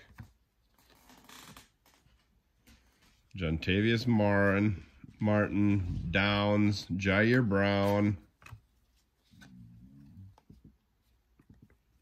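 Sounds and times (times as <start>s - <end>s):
trading cards rustling: 4.0s - 12.0s.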